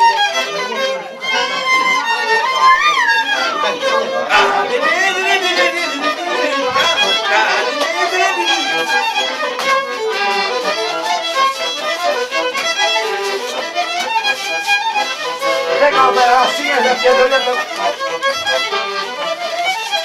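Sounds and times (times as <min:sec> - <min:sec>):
accordion: 0:00.0 - 0:20.0
fiddle: 0:00.0 - 0:20.0.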